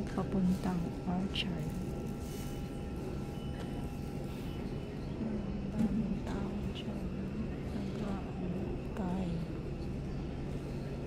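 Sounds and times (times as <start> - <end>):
faint tonal hum: 0.0 - 11.0
metro platform rumble and hiss: 0.0 - 11.0.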